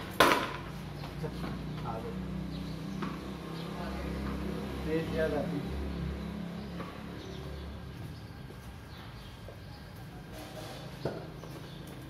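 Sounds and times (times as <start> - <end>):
cricket bat striking ball: 0.1 - 0.7.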